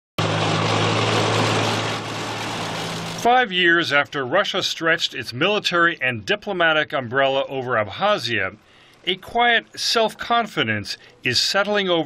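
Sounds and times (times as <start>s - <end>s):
tracked vehicle engine drone: 0.2s - 11.2s.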